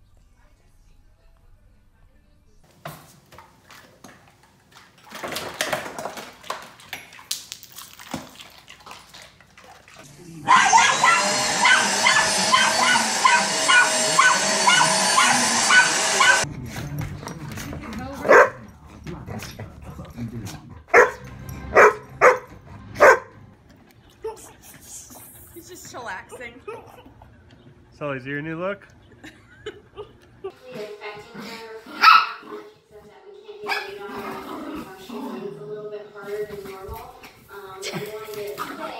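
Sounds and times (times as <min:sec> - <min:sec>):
vacuum cleaner whining: 0:10.1 - 0:16.5
dog barks: 0:10.4 - 0:16.4, 0:18.2 - 0:18.7, 0:20.9 - 0:23.4, 0:32.0 - 0:32.6, 0:33.6 - 0:34.0
puppy yapping: 0:10.4 - 0:16.4, 0:20.9 - 0:21.2, 0:32.0 - 0:32.5.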